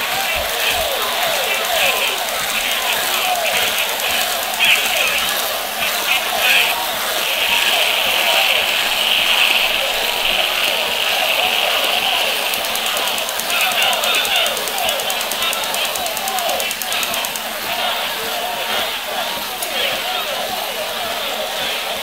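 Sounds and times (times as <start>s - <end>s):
children's voices: 0.0s - 22.0s.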